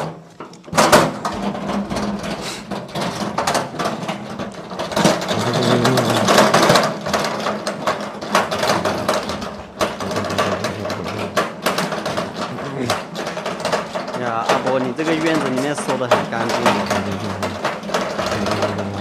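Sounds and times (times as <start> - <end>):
metal cart rattling over concrete: 0.0 - 19.0.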